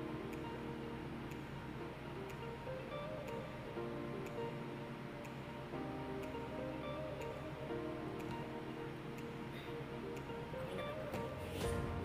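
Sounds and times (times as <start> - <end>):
light melody over ticking beat: 0.0 - 12.0.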